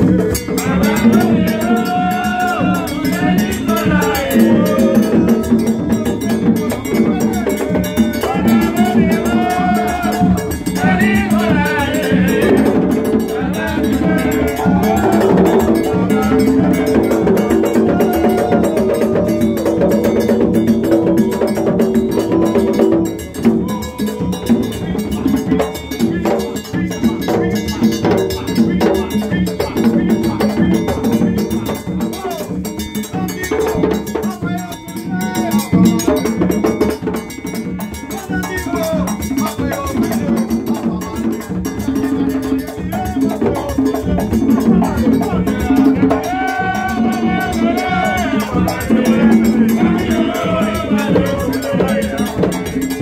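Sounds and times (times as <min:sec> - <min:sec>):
hand drums beating: 0:00.0 - 0:53.0
metallic percussion ringing: 0:00.0 - 0:53.0.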